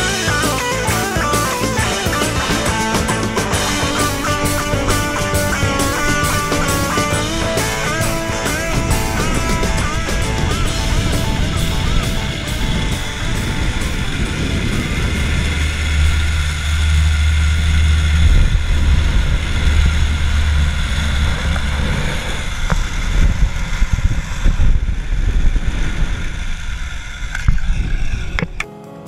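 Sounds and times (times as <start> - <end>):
wind buffeting microphone: 0.0 - 28.6
zipline trolley whirring on cable: 0.0 - 28.6.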